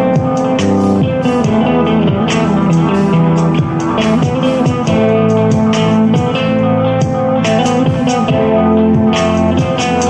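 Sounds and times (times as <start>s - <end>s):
backing track with drums: 0.0s - 10.0s
electric guitar lead: 0.0s - 10.0s.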